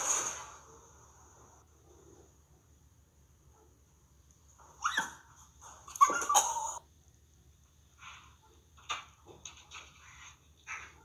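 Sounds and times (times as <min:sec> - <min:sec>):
dog crying: 0:05.9 - 0:06.8.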